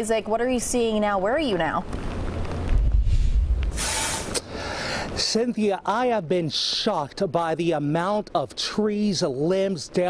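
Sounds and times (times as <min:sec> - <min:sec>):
wind buffeting microphone: 0:01.9 - 0:03.8.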